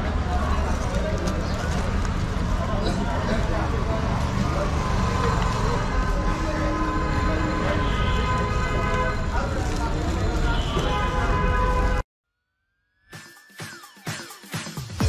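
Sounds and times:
people's voices: 0:00.0 - 0:11.4
traffic noise: 0:00.0 - 0:12.0.

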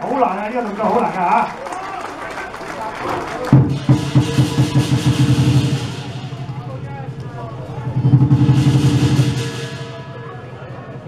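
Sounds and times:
big drum beaten rapidly: 0:03.5 - 0:11.0
cymbals crashing: 0:03.5 - 0:11.0.

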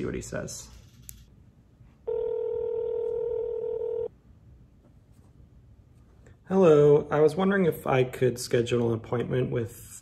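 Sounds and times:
telephone ringback tone: 0:02.1 - 0:04.1.

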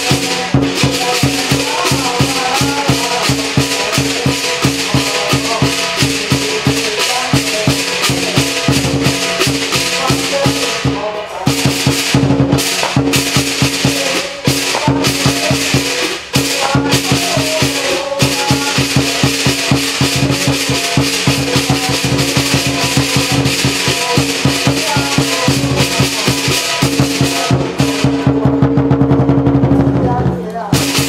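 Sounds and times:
crash cymbals: 0:00.0 - 0:29.4, 0:30.7 - 0:31.0
lion drum: 0:00.0 - 0:31.0.

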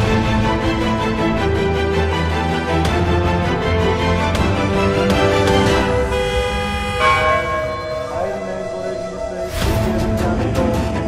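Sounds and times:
church bells ringing: 0:06.2 - 0:08.8.

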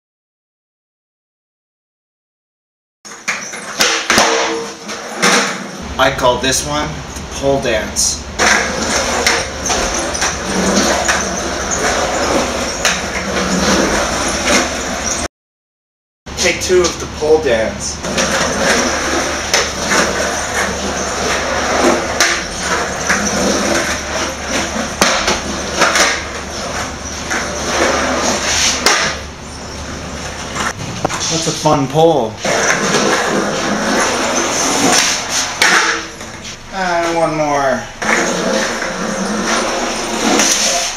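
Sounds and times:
skateboard wheels rolling on concrete: 0:03.1 - 0:15.3, 0:16.4 - 0:40.9.

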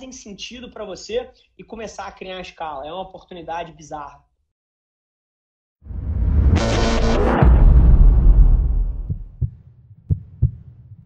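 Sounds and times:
low rumble: 0:05.9 - 0:09.5
heartbeat double thumps: 0:07.4 - 0:11.0.

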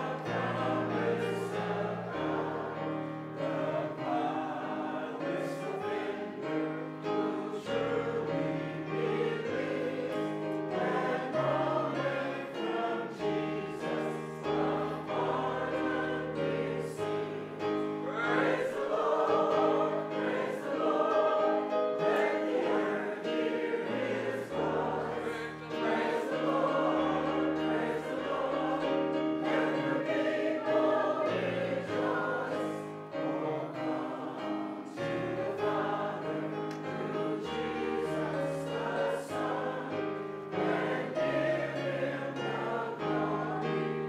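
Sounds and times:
congregation singing a hymn: 0:00.0 - 0:44.0
keyboard accompaniment: 0:00.0 - 0:44.0.

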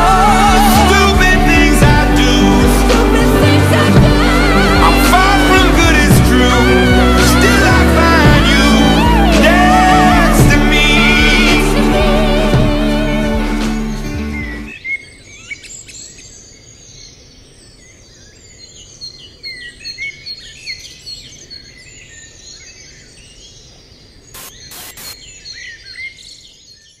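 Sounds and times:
song: 0:00.0 - 0:14.7
faint outdoor hiss: 0:12.9 - 0:26.7
small birds chirping: 0:13.7 - 0:27.0
sharp clicks: 0:24.4 - 0:25.2.

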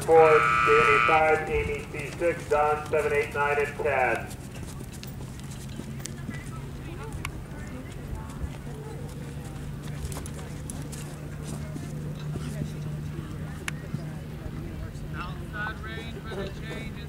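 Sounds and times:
hoofbeats on sand: 0:00.0 - 0:12.5
steady low hum: 0:00.0 - 0:15.8
distant voices: 0:00.0 - 0:17.0.

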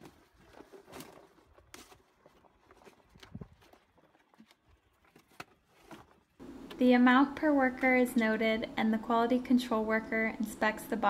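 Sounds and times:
cardboard boxes handled: 0:00.0 - 0:06.4.

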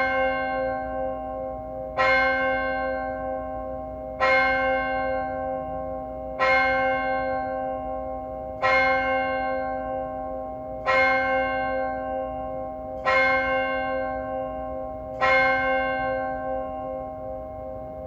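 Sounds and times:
church bell tolling: 0:00.0 - 0:18.0.

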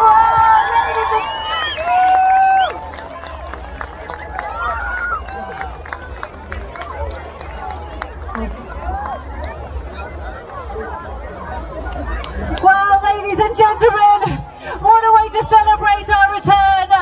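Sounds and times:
crowd cheering and calling out: 0:00.0 - 0:17.0.

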